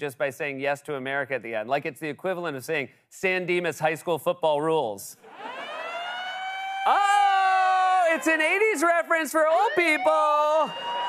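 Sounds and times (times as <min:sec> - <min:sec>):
steady siren tone: 0:05.2 - 0:11.0
wailing siren: 0:05.2 - 0:11.0.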